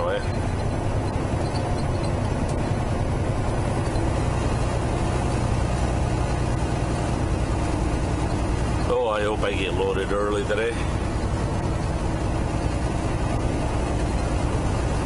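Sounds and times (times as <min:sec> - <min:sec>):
road noise: 0:00.0 - 0:15.0
truck diesel engine drone: 0:00.0 - 0:15.0.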